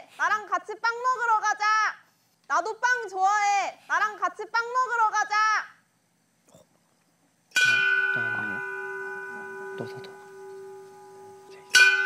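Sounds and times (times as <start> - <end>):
small hanging bell ringing: 7.6 - 12.0.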